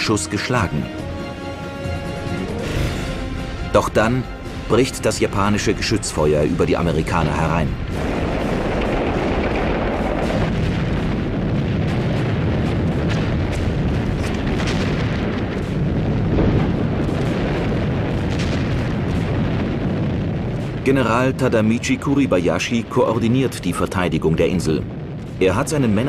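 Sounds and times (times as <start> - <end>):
artillery fire rumble: 1.9 - 26.0.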